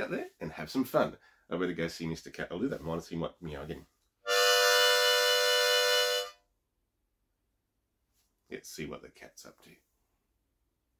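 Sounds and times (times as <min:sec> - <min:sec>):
harmonica long tone: 0:04.2 - 0:06.4.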